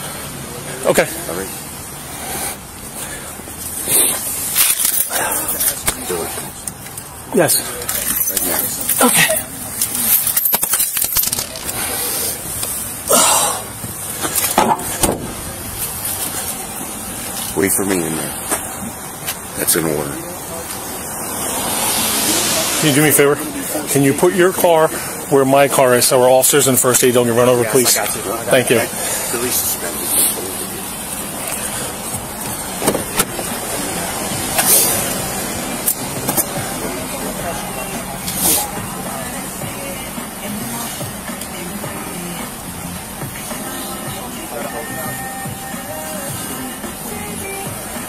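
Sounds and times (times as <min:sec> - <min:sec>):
motor vehicles running on street: 0:00.0 - 0:48.0
outdoor background noise: 0:00.0 - 0:48.0.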